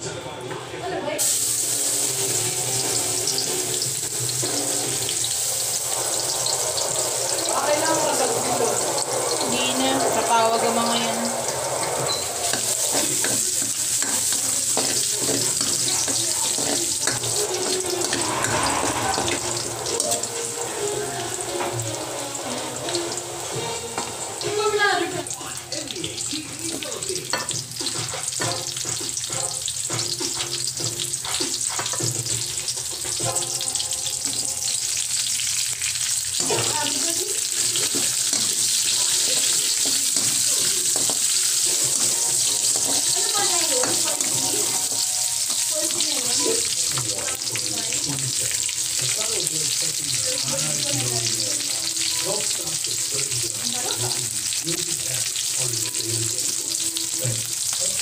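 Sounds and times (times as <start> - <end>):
garlic sizzling in hot oil: 1.2 - 58.0.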